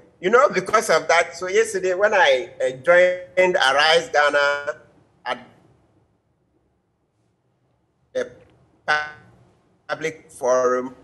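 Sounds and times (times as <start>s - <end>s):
man speaking: 0.0s - 5.6s, 8.2s - 9.3s, 9.9s - 11.0s.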